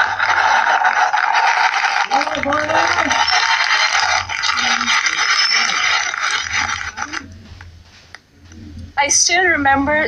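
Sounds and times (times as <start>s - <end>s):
audience applause: 0.0s - 7.2s.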